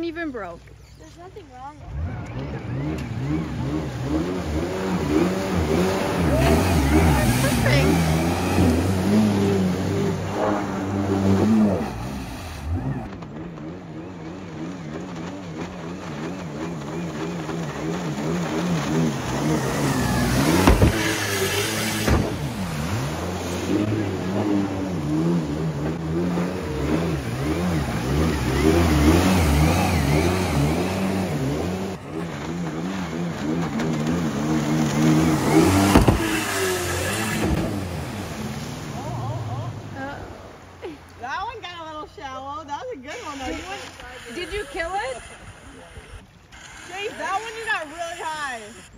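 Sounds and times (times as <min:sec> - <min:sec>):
jet ski engine running hard: 0:00.1 - 0:48.9.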